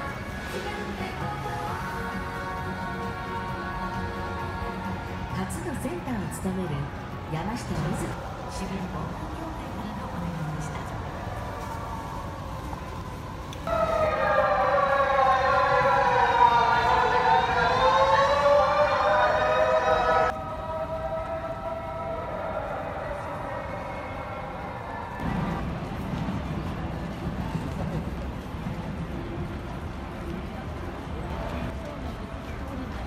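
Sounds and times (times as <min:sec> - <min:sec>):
city street noise: 0:00.0 - 0:33.0
emergency vehicle siren wailing: 0:07.8 - 0:25.2
faint siren tone: 0:11.6 - 0:25.2.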